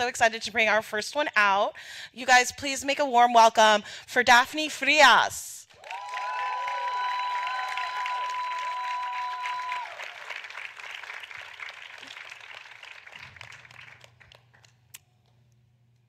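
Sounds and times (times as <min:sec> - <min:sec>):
audience applauding: 0:05.8 - 0:14.8.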